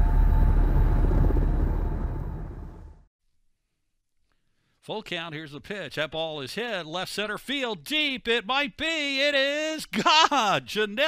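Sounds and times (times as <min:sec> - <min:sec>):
noisy rush: 0:00.0 - 0:03.0
deep rumble: 0:00.0 - 0:03.1.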